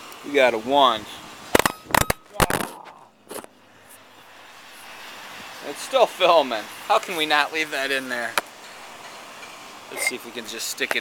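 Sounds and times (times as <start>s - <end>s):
phone bumping microphone: 1.6s - 3.5s.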